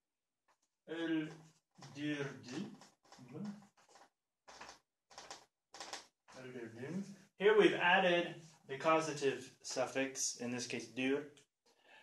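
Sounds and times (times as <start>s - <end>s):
man talking: 0.9s - 3.5s, 6.4s - 11.3s
marker scratching on whiteboard: 1.5s - 6.1s.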